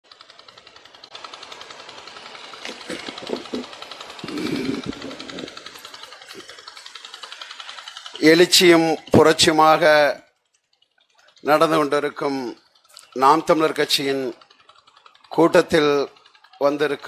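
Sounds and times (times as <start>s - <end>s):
fast rattle of sharp pops: 0.1s - 16.6s
faint voices: 2.7s - 9.9s.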